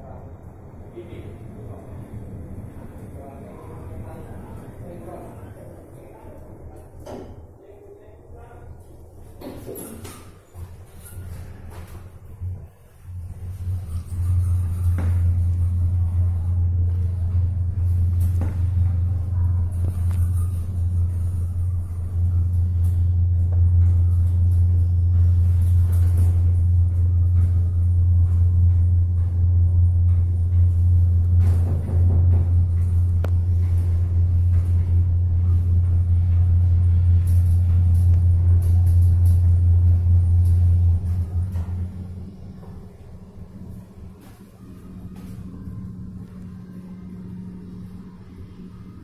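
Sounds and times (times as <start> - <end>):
elevator cab rumble: 0.0 - 7.6, 8.2 - 49.0.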